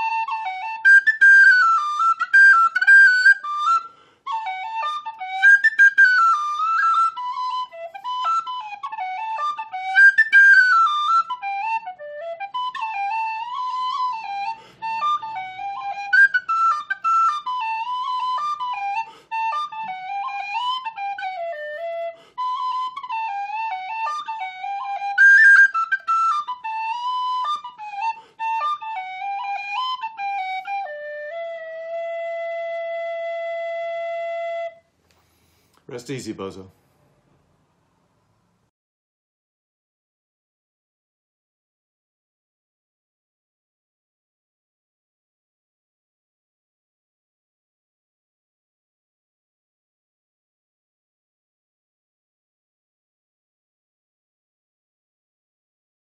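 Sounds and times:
tin whistle playing a jig: 0.0 - 34.9.

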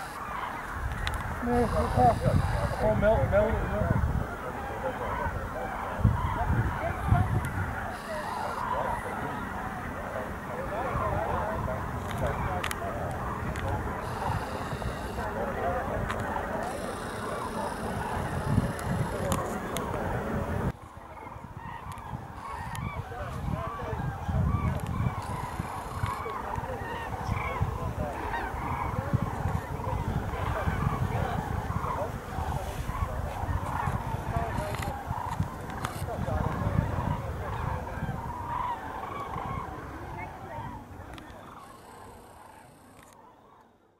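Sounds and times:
cranes trumpeting in flight: 0.0 - 43.6.

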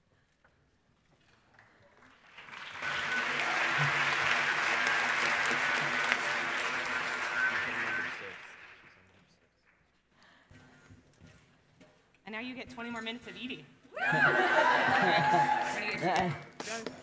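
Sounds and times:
audience applauding: 2.0 - 9.2, 14.0 - 16.9.

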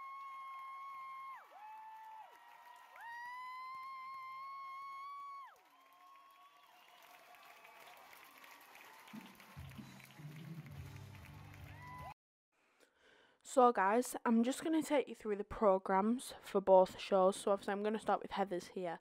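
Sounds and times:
audience applauding and cheering: 0.0 - 12.2.

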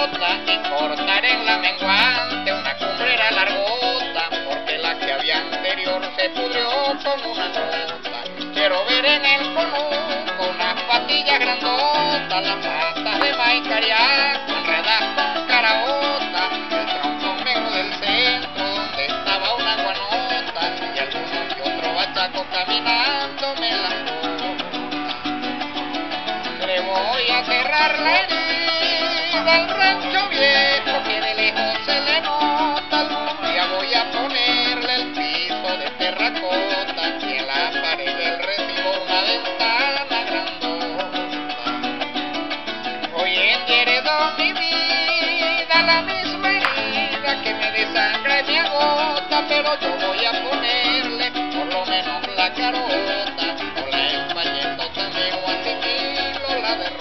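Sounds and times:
strummed small guitar: 0.0 - 57.0.

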